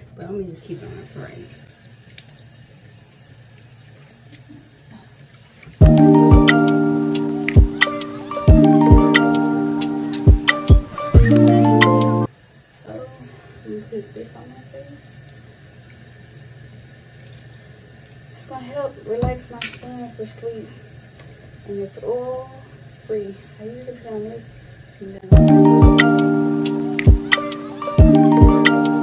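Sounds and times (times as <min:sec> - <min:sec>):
tap water running into sink: 0:01.0 - 0:09.4
music with bell-like mallet notes: 0:05.8 - 0:12.3, 0:25.3 - 0:29.0.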